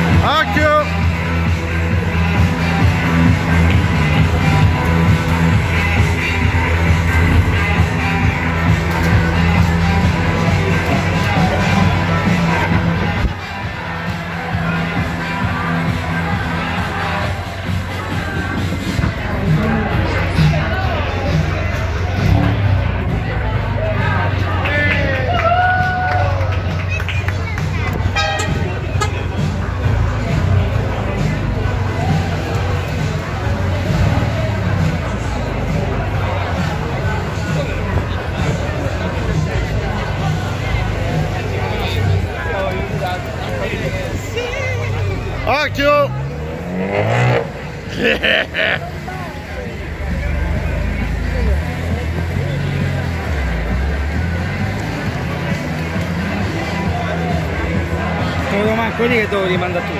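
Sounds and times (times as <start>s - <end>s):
car engine idling: 0.0s - 25.2s, 26.5s - 59.9s
crowd chatter: 0.0s - 59.9s
music: 0.0s - 59.9s.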